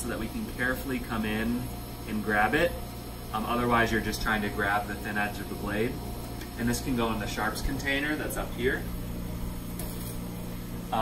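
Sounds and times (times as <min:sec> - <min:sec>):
faint mains buzz: 0:00.0 - 0:11.0
low machine hum: 0:00.0 - 0:11.0.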